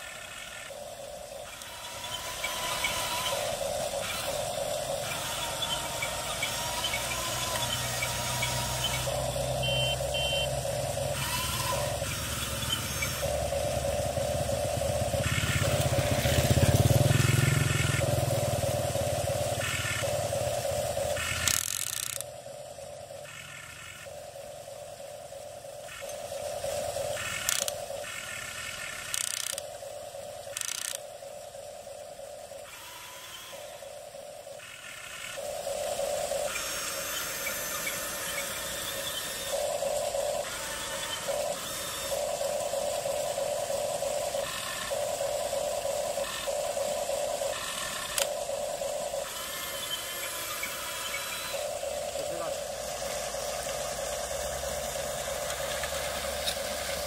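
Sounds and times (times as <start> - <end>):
toy gear motors whirring: 0.0 - 57.0
sharp clicks: 21.1 - 22.3, 27.2 - 29.7, 30.4 - 31.1, 44.3 - 52.6.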